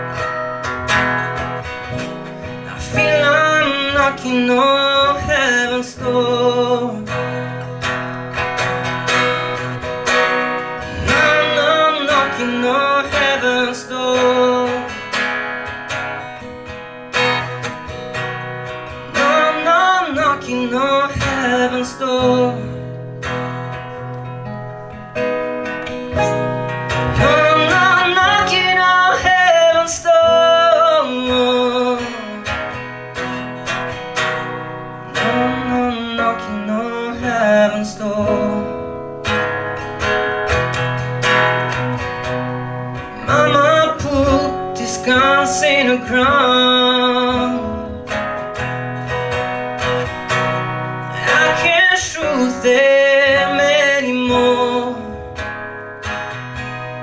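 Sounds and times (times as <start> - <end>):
acoustic guitar strumming: 0.0 - 57.0
man singing: 2.6 - 7.9, 10.7 - 15.2, 19.0 - 23.0, 26.9 - 32.9, 35.1 - 39.1, 43.1 - 48.2, 51.0 - 55.4.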